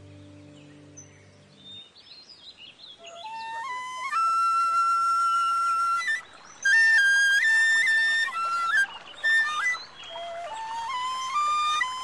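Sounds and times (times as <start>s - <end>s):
soft sustained chord: 0.0s - 2.1s
flute melody: 3.0s - 12.0s.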